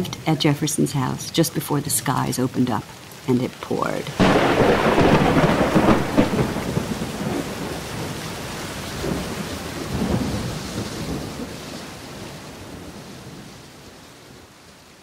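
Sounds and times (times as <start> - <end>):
heavy rain: 0.0 - 15.0
thunder rolling: 4.2 - 11.6.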